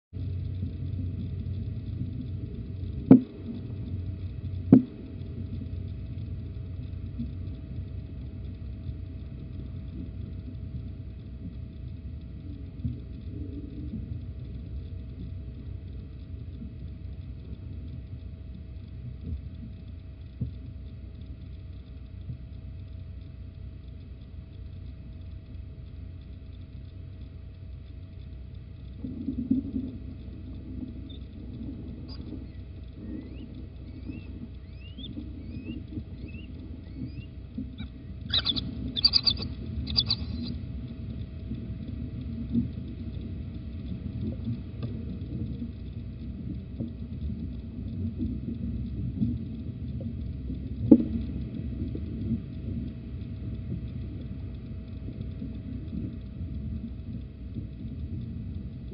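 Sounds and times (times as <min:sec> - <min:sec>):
low hum and rumble: 0:00.0 - 0:58.9
faint steady tone: 0:00.2 - 0:58.9
faint ticks: 0:00.2 - 0:58.9.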